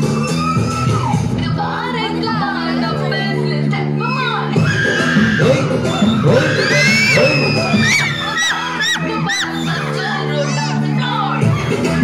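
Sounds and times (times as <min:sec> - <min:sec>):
children shouting and cheering: 0:00.0 - 0:02.8, 0:03.8 - 0:12.0
loud song music: 0:00.0 - 0:12.0.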